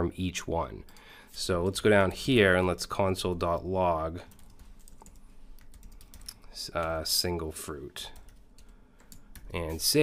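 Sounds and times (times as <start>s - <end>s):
computer keyboard typing: 4.3s - 7.1s, 8.1s - 10.0s.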